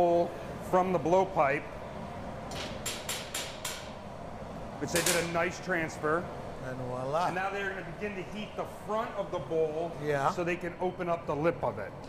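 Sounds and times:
steady low equipment hum: 0:00.0 - 0:12.0.

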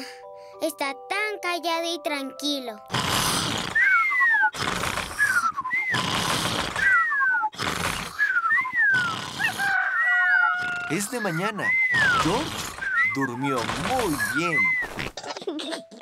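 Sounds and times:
cartoon piglets snoring: 0:02.9 - 0:15.2.

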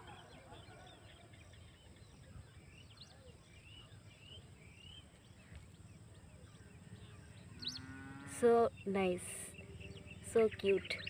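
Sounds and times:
soft bird chirps: 0:00.0 - 0:11.0.

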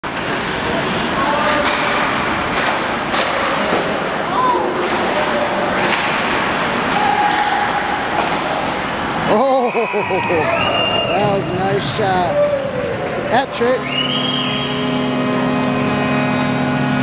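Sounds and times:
hockey sticks clacking on puck: 0:01.4 - 0:04.0, 0:04.8 - 0:08.5.

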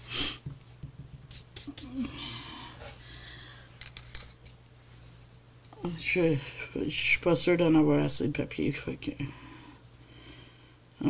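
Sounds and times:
pencils clicking and tapping: 0:03.8 - 0:04.3.

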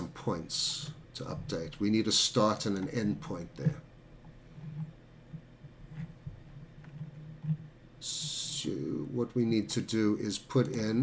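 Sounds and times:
low uneven hum: 0:00.0 - 0:11.0.

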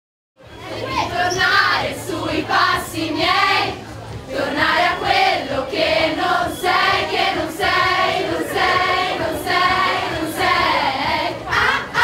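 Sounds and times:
group of voices singing: 0:00.5 - 0:12.0.

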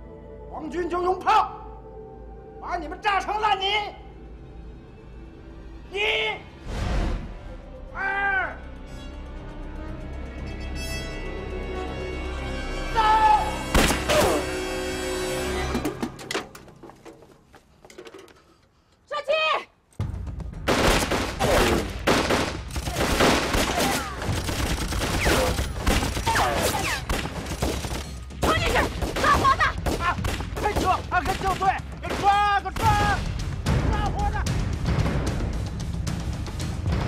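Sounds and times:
dramatic music score: 0:00.0 - 0:17.8, 0:19.9 - 0:37.0
people shouting: 0:12.9 - 0:14.5, 0:22.9 - 0:24.3, 0:26.2 - 0:27.1
rapid rifle and machine-gun fire: 0:20.7 - 0:33.0.

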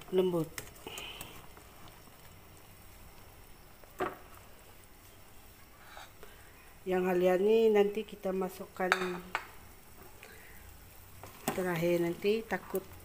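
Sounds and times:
soup boiling in a pot: 0:00.0 - 0:13.0.

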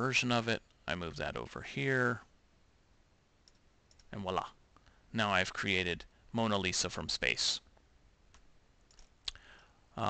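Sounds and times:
computer mouse clicks: 0:03.4 - 0:04.1, 0:08.3 - 0:09.4.

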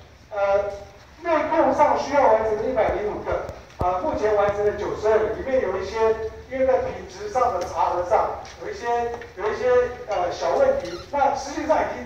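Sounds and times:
person speaking: 0:00.3 - 0:12.0.

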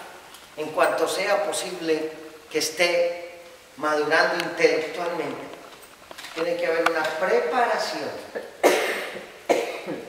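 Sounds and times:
person coughing: 0:08.3 - 0:10.0.

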